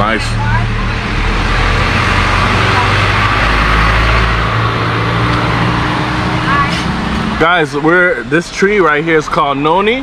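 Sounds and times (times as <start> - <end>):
road traffic noise: 0.0 - 10.0
vehicle engine humming: 0.0 - 10.0.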